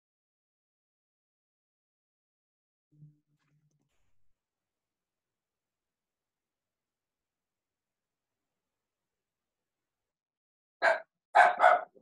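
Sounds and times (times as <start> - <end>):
dog barking: 10.8 - 12.0.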